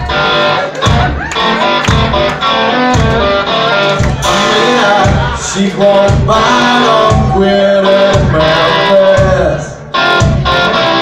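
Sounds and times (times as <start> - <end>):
bass line: 0.0 - 11.0
electric guitar: 0.0 - 11.0
live band playing loudly: 0.0 - 11.0
low beat: 0.0 - 11.0.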